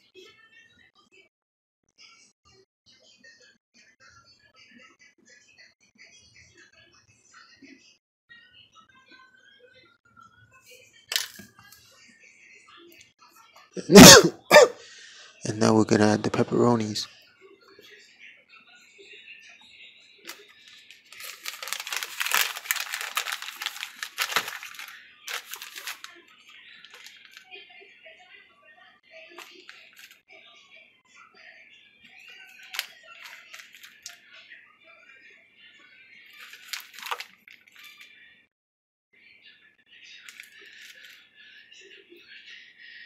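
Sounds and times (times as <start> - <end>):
faint background music: 0.0 - 38.5, 39.1 - 43.0
crackly rustling handling noise: 20.3 - 27.5, 29.4 - 30.2, 32.4 - 34.2, 36.3 - 38.1, 40.2 - 41.2.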